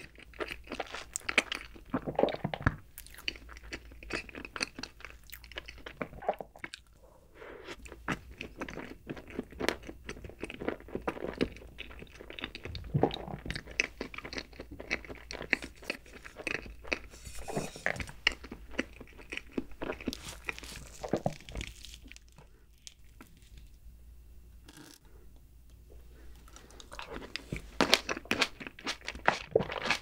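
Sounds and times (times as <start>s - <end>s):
person chewing and crunching: 0.0s - 7.0s, 7.6s - 23.7s, 26.4s - 30.0s.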